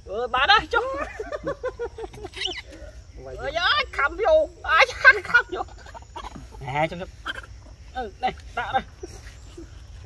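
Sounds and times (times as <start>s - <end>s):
man laughing: 0.8s - 2.9s.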